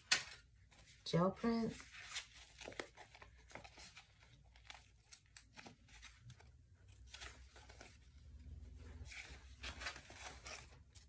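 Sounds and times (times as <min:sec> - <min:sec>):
paper sheets rustling: 0:00.0 - 0:11.0.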